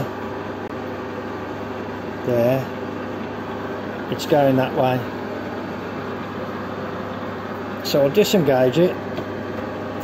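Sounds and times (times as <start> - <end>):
metal lathe humming: 0.0 - 10.0.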